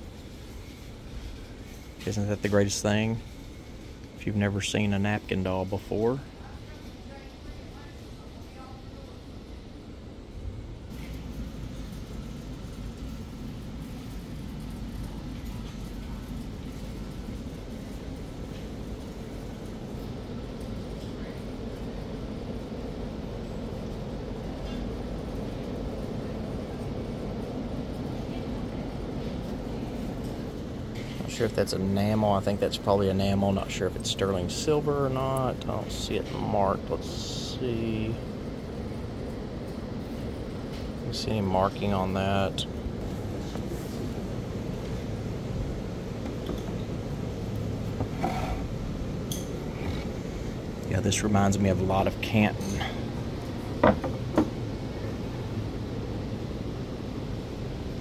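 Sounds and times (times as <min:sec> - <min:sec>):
low indoor background rumble: 0:00.0 - 0:58.0.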